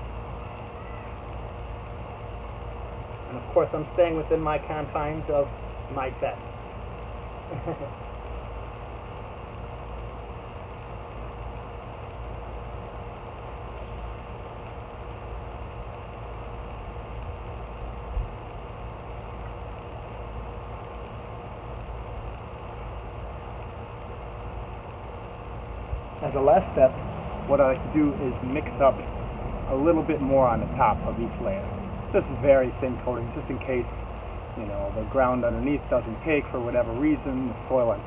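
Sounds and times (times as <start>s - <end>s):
steady background hum: 0.0s - 38.0s.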